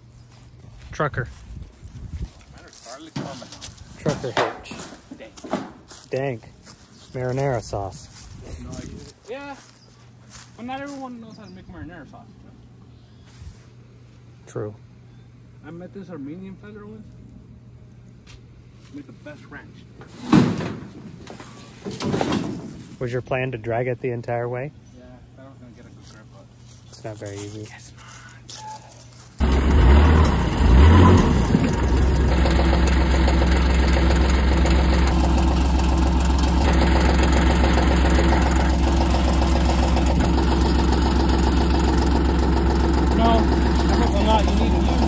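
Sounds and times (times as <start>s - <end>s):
utility vehicle engine idling: 29.4s - 45.0s.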